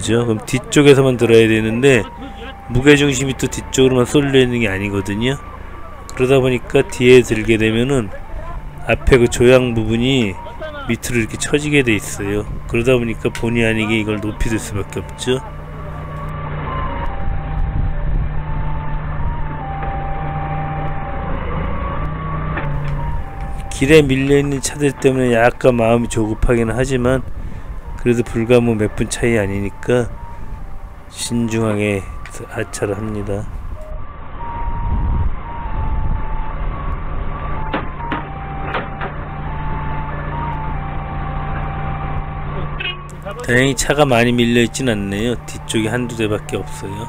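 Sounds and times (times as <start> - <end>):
electronic warning tone melody: 0.0 - 47.0
forklift engine running under load: 0.0 - 47.0
sharp clunks: 37.7 - 39.2.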